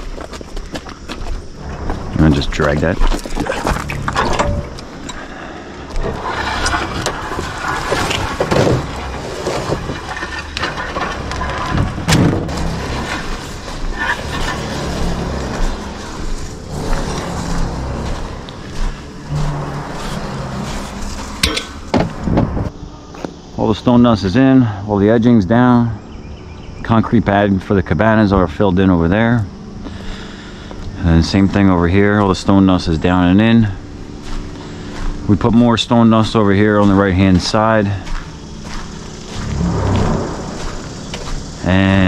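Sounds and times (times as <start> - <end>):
steel plate scraping over gravel: 1.3 - 5.3, 5.9 - 22.3, 30.8 - 42.0.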